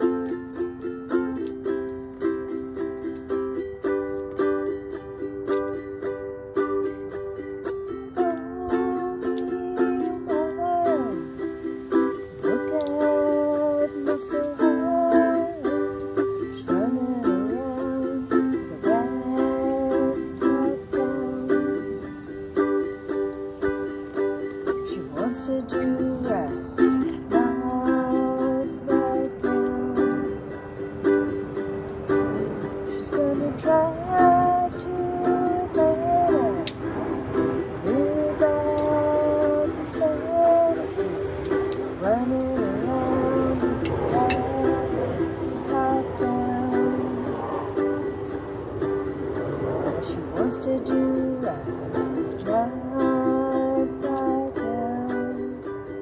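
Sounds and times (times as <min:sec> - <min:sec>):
woman singing: 0:00.0 - 0:02.6, 0:04.4 - 0:48.2, 0:49.4 - 0:56.0
ukulele strumming chords: 0:00.0 - 0:56.0.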